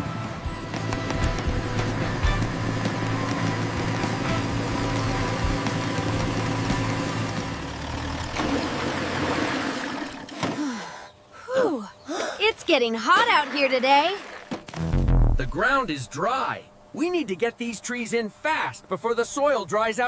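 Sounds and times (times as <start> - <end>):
background music: 0.0 - 7.7
cartoon vehicle engine: 0.0 - 10.8.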